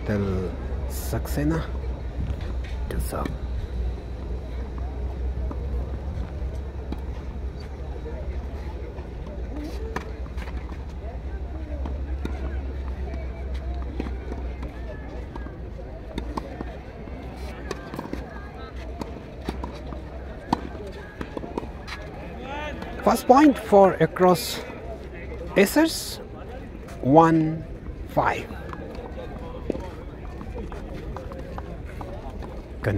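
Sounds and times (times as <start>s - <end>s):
faint distant voices: 0.0s - 32.9s
wind rumble on microphone: 1.9s - 4.5s
tennis balls bouncing on clay: 2.5s - 23.7s, 28.3s - 32.9s
tennis balls struck by racquets: 11.4s - 22.2s.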